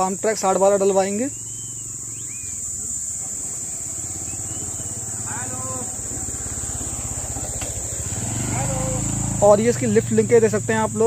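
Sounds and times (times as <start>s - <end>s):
diesel tractor engine idling: 0.6s - 11.0s.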